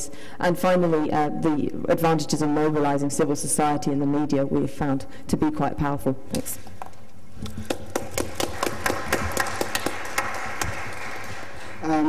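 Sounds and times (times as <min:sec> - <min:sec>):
small audience applause: 0:07.6 - 0:12.0.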